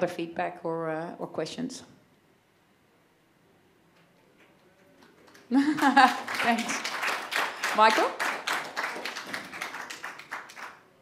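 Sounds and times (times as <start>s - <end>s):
hands clapping quickly: 5.0s - 11.0s.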